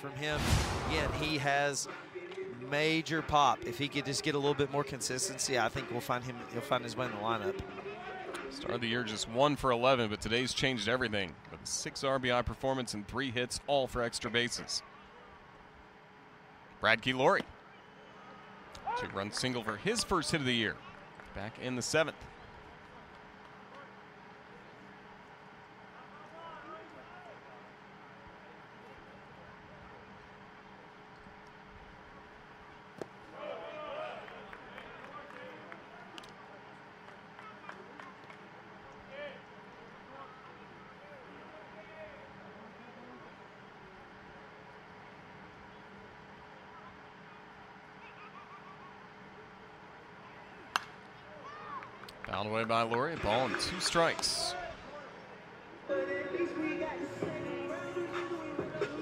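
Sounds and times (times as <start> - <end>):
faint distant crowd voices: 0.0 - 59.0.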